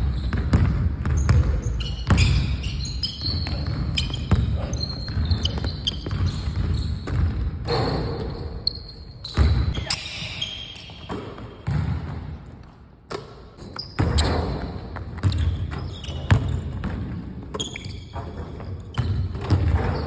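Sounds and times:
basketball bouncing on wooden floor: 0.0 - 8.5, 9.2 - 10.0, 11.0 - 20.0.

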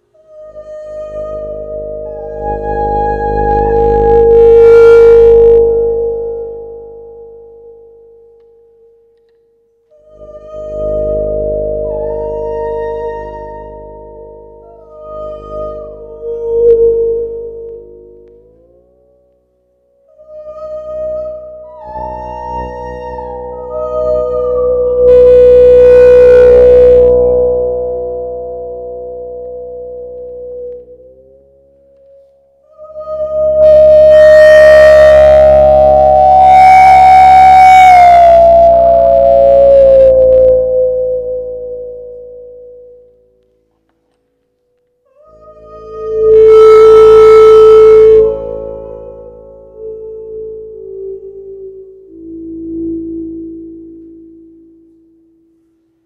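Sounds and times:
electronic instrument held tones: 0.0 - 56.0.

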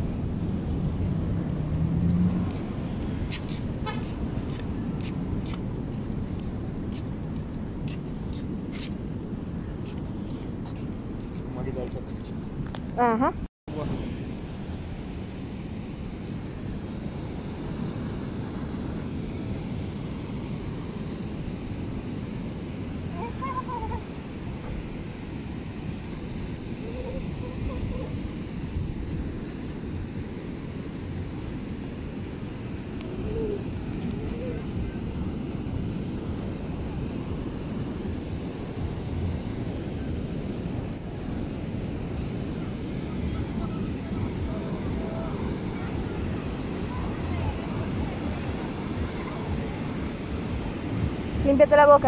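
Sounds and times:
wind buffeting microphone: 0.0 - 52.0
surf washing: 13.7 - 52.0
faint voices: 26.0 - 30.3, 32.6 - 52.0.

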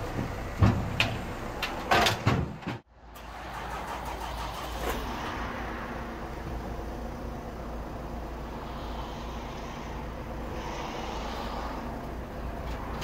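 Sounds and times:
diesel engine humming: 0.0 - 13.0
vehicle clattering onto wooden deck: 0.1 - 2.8.

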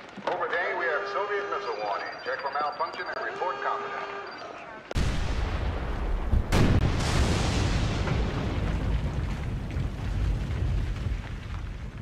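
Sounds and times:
explosion blast: 4.9 - 12.0.

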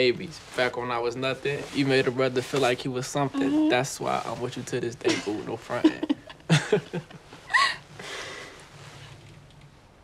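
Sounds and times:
young women laughing: 5.1 - 7.9.

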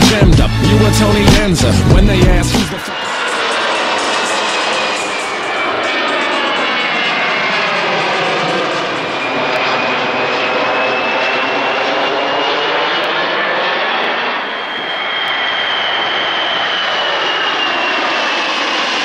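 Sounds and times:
jet airliner passing overhead: 2.6 - 19.0.

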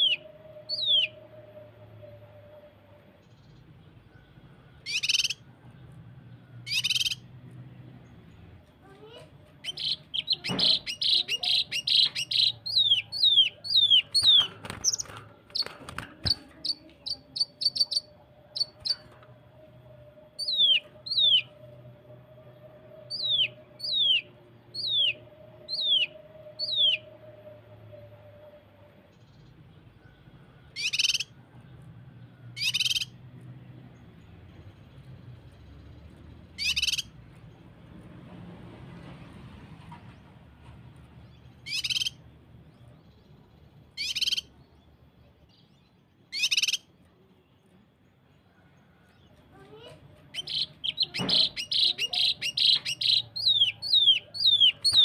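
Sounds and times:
bird singing: 0.0 - 37.7, 41.2 - 55.0.

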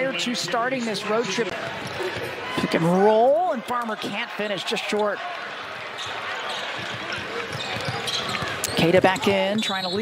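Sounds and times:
arena background noise: 0.0 - 10.0
players' footsteps running: 6.2 - 10.0
basketball bouncing on hardwood: 6.7 - 9.7.

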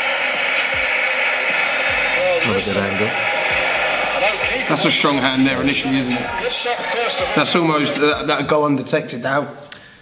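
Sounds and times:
stadium crowd din: 0.0 - 8.7.

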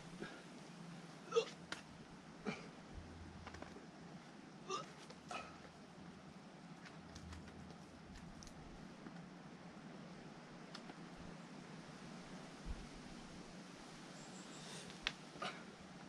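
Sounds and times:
climber grunting: 1.2 - 1.6, 4.6 - 5.7, 15.4 - 15.7.

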